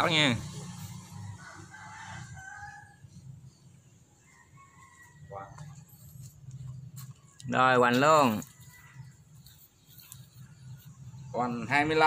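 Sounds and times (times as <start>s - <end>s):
distant rooster crowing: 0.0s - 12.0s.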